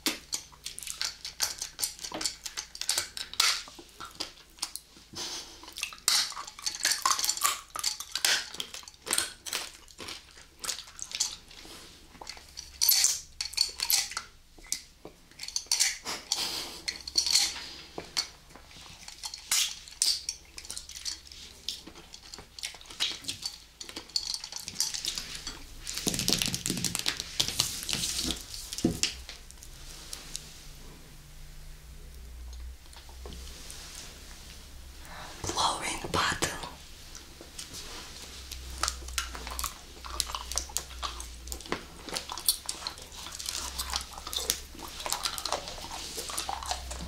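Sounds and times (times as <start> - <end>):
wet licking and sucking sounds: 36.5 - 47.0
gum chewing clicks and smacks: 38.5 - 47.0.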